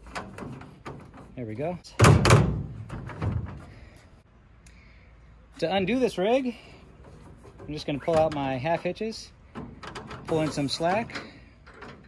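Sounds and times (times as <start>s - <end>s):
stepladder hollow thunks: 1.9s - 3.9s.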